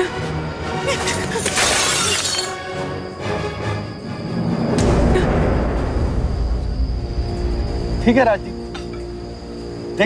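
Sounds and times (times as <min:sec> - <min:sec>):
dramatic background music: 0:00.0 - 0:10.0
glass shattering: 0:00.9 - 0:02.7.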